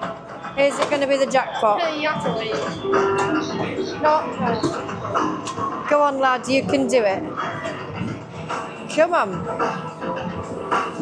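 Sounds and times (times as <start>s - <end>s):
electronic game music: 2.1s - 5.5s
background voices: 2.2s - 8.4s.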